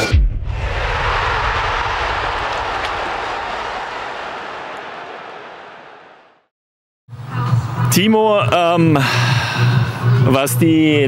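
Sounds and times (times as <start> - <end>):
rush of noise: 0.0 - 4.8.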